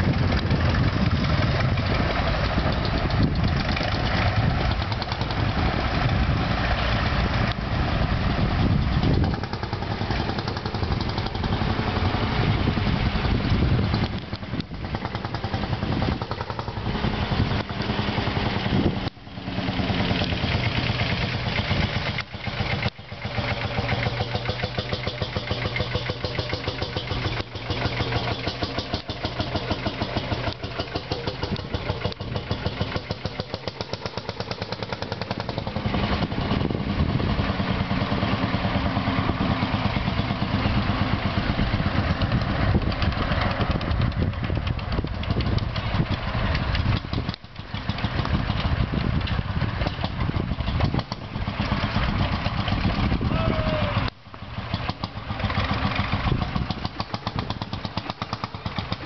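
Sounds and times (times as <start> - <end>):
tractor engines running: 0.0 - 59.0.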